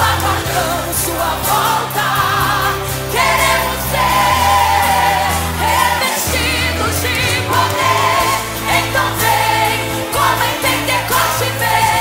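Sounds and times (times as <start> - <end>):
choir singing a hymn: 0.0 - 12.0.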